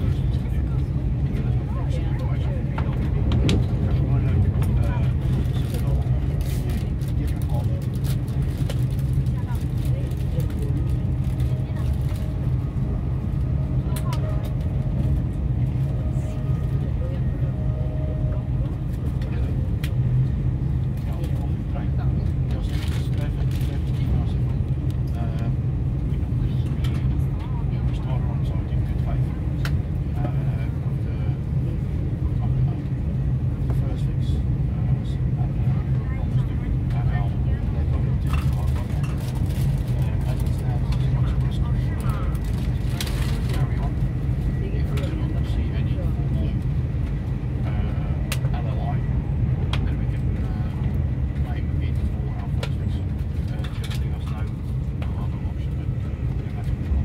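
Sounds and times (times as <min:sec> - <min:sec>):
vehicle rumble from inside: 0:00.0 - 0:57.0.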